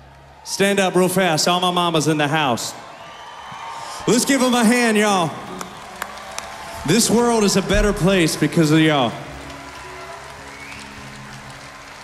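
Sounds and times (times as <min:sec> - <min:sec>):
faint audience applause: 0:00.0 - 0:12.0.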